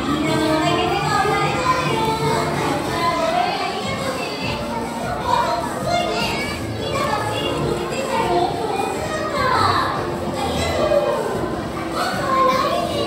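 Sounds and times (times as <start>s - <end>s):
children chattering and calling out: 0.0s - 13.0s
faint music: 0.0s - 13.0s.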